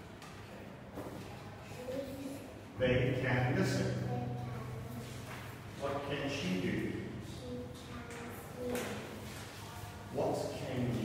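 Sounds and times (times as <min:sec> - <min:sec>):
low room noise: 0:00.0 - 0:11.0.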